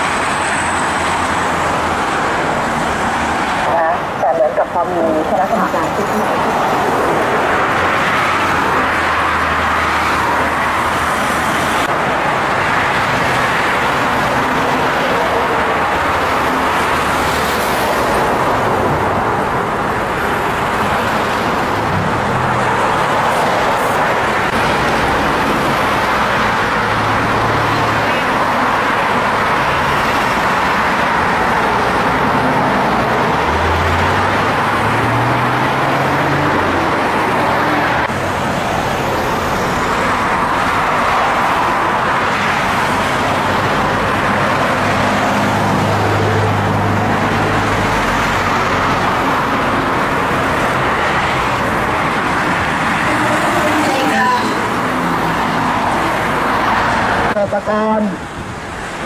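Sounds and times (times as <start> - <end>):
highway traffic rushing: 0.0 - 59.0.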